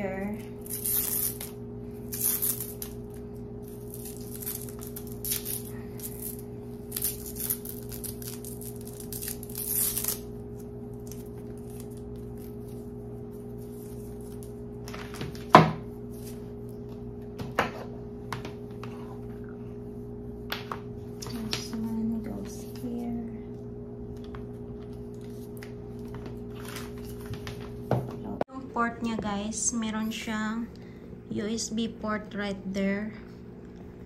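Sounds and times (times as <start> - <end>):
steady low hum: 0.0 - 34.0
cable rustling and crinkling: 24.1 - 27.9.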